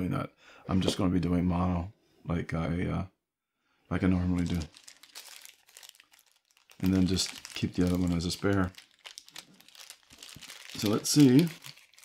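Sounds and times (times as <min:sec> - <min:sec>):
plastic bag crinkling: 0:04.2 - 0:12.0.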